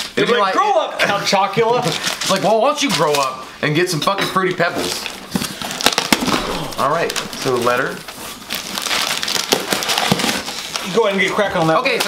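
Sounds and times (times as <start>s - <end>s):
paper rustling and crinkling: 1.7s - 3.4s, 4.6s - 12.0s.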